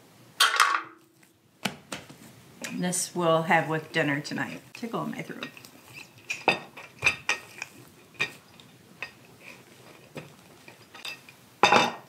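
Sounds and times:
utensils clinking on dish: 0:05.3 - 0:08.4, 0:10.7 - 0:12.0.

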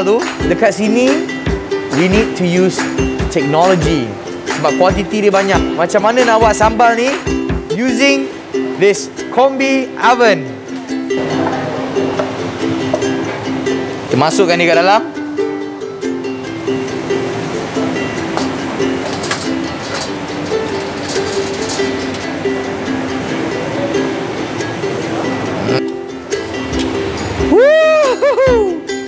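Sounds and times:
plucked ukulele melody: 0:00.0 - 0:29.0
comic pitch sweeps: 0:11.0 - 0:14.1.

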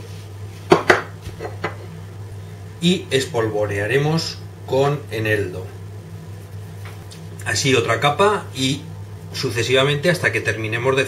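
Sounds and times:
containers knocking on countertop: 0:00.7 - 0:01.8.

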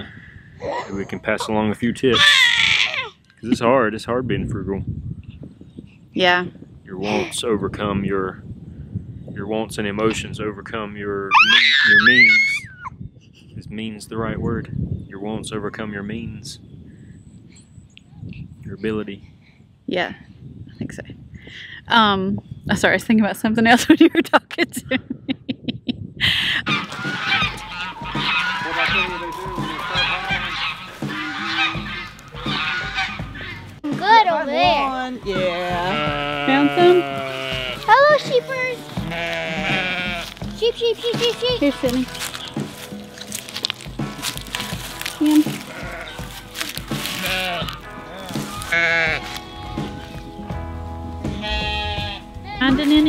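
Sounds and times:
wind rumbling on microphone: 0:00.0 - 0:53.0
person laughing: 0:00.6 - 0:01.8, 0:23.9 - 0:26.8
background music: 0:26.6 - 0:53.0
farm fowl honking: 0:26.7 - 0:33.8, 0:35.8 - 0:40.4, 0:44.5 - 0:50.2, 0:51.3 - 0:53.0
sheep bleating: 0:27.2 - 0:33.2, 0:35.3 - 0:40.4, 0:45.4 - 0:46.3, 0:47.1 - 0:49.8, 0:51.3 - 0:52.3.

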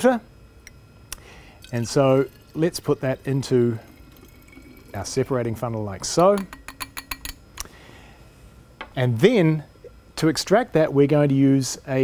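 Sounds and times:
liquid pouring into glass: 0:01.3 - 0:05.8
glass clinks and ticks: 0:06.2 - 0:07.4.

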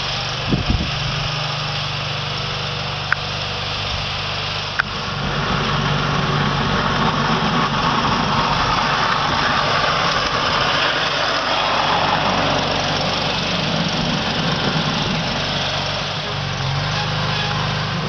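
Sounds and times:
blade plowing snow: 0:00.0 - 0:18.0
skid steer engine running: 0:00.0 - 0:18.0.

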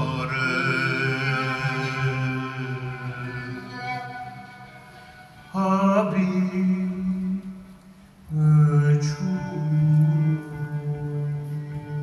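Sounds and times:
duduk slow melody: 0:00.0 - 0:12.0.

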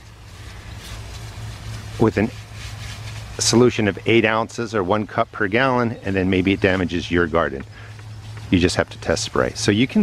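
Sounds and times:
sprayer wand hissing: 0:00.0 - 0:04.1
steady low hum: 0:00.0 - 0:10.0.

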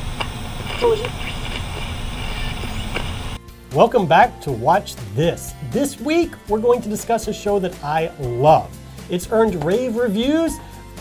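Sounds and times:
television static hiss: 0:00.0 - 0:03.4.

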